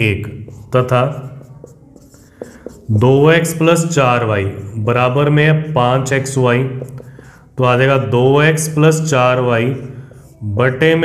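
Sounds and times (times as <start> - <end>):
marker scratching on whiteboard: 0.0 - 4.8, 6.2 - 7.6, 8.6 - 10.4
marker tapping on whiteboard: 0.3 - 3.5, 6.6 - 7.4.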